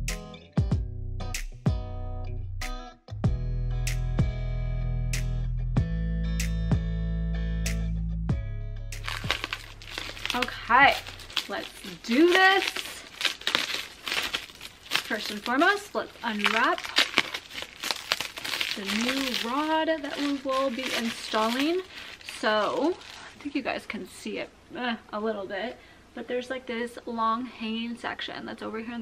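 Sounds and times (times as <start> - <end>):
plastic wrapping crinkling: 9.0 - 23.7.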